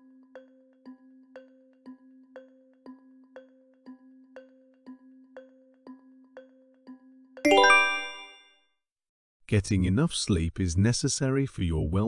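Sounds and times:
ticking countdown tone: 0.0s - 8.4s
bright bell-like chime: 7.5s - 8.6s.

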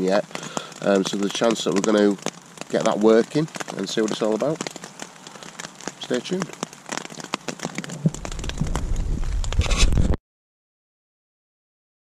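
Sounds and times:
rain ticking on a tarp: 0.0s - 10.2s
camera handling rumble: 7.8s - 10.2s.

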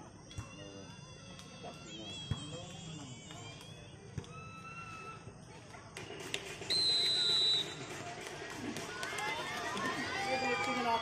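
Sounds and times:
referee's whistle blast: 6.7s - 7.8s.

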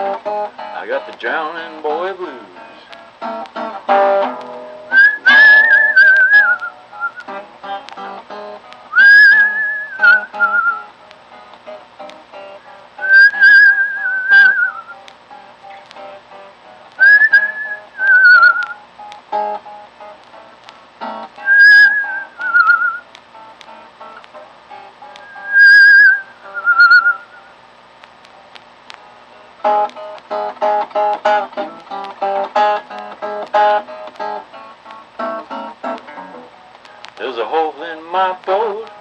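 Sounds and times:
picked acoustic guitar: 0.0s - 39.0s
whistled blues melody: 2.3s - 11.0s, 11.7s - 20.2s, 21.0s - 27.6s, 29.6s - 36.5s.

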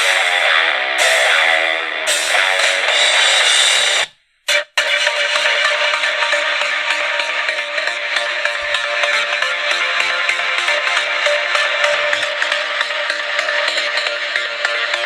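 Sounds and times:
electronic music: 0.0s - 15.0s
guitar rock music: 0.0s - 15.0s.

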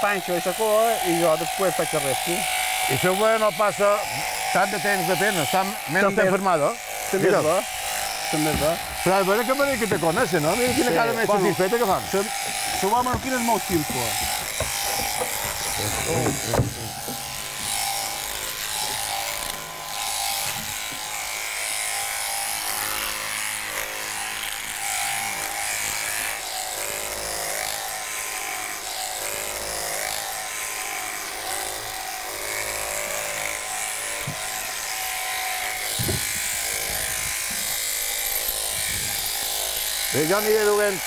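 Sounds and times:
electric clipper buzzing: 0.0s - 41.0s.

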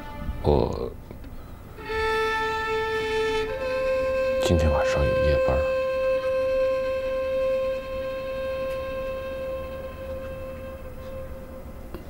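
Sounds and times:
held music note: 1.8s - 12.0s.

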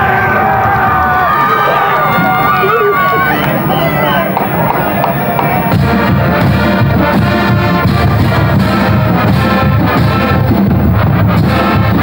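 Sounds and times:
crowd shouting and cheering: 0.0s - 6.2s.

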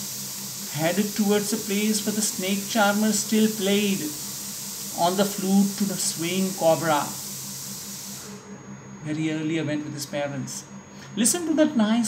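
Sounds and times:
background hiss: 0.0s - 8.3s.

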